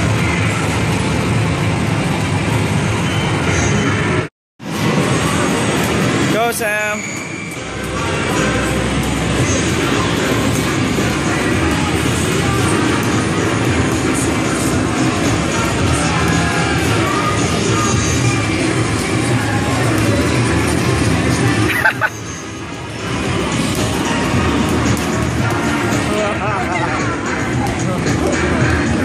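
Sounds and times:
loud music: 7.7s - 29.0s.

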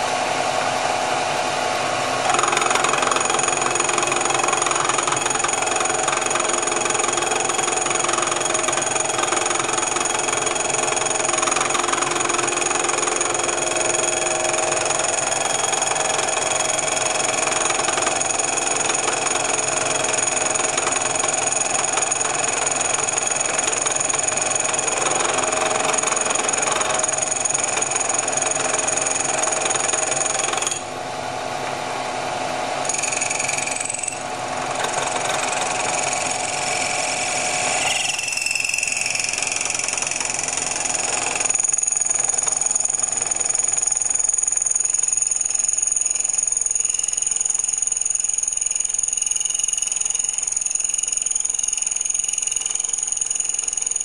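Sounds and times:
milling machine cutting metal: 32.8s - 43.1s.

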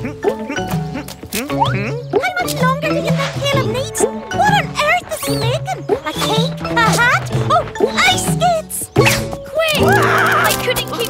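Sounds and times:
quavering wobbling vocal: 0.0s - 9.3s
cartoon background music: 0.0s - 11.0s.

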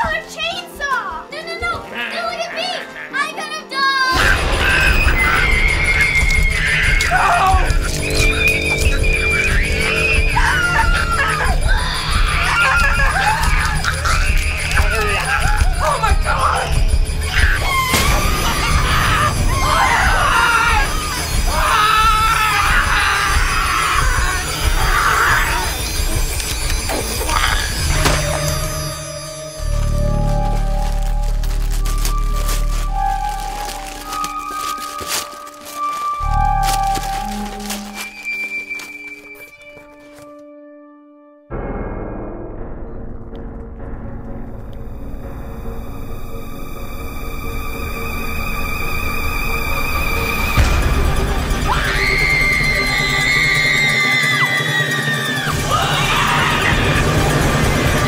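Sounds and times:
music: 0.0s - 58.0s
people screaming: 4.1s - 29.0s, 49.4s - 58.0s.

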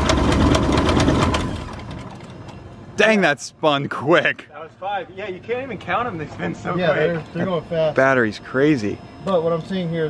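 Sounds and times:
aircraft engine cranking without firing: 0.0s - 2.6s.

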